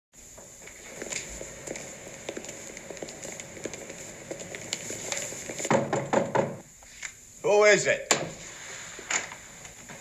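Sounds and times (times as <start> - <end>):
film crackle hiss: 0.2 - 10.0.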